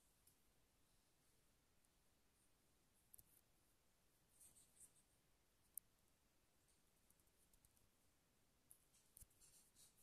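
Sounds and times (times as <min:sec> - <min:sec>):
faint scratchy rustling: 0:04.2 - 0:05.2, 0:08.6 - 0:10.0.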